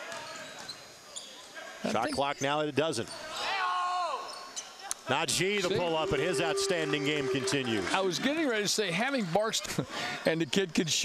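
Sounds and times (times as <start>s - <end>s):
murmur of crowd voices: 5.2s - 9.9s.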